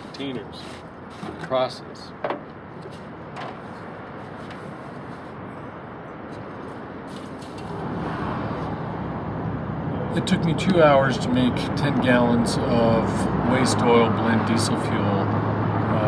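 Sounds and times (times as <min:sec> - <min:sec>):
outdoor traffic noise: 0:00.0 - 0:16.0.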